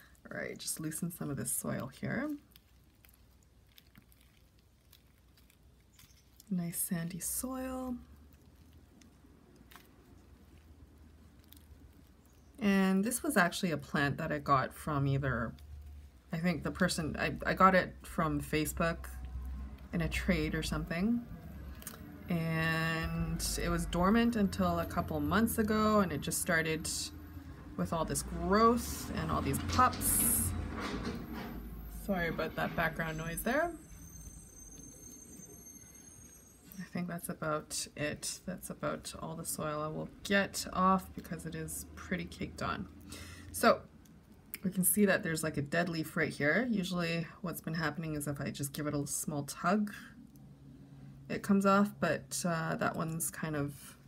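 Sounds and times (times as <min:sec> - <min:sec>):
low steady hum: 0:00.0 - 0:54.0
dry soil crackling: 0:00.2 - 0:27.1
faint high whine: 0:32.0 - 0:37.1.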